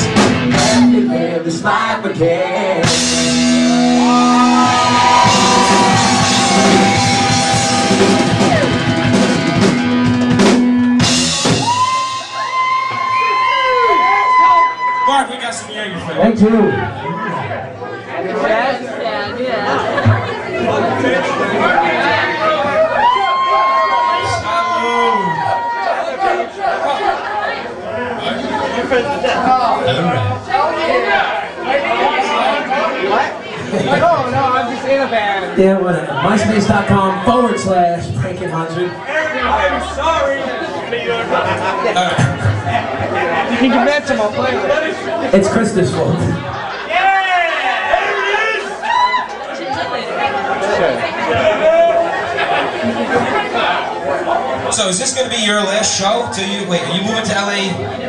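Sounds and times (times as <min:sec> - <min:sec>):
drums: 0:00.0 - 0:15.3, 0:19.9 - 0:20.6, 0:41.2 - 0:47.2
electric guitar sustained notes: 0:03.0 - 0:15.2, 0:39.3 - 0:41.6
people talking: 0:27.8 - 0:47.4, 0:49.5 - 0:58.0.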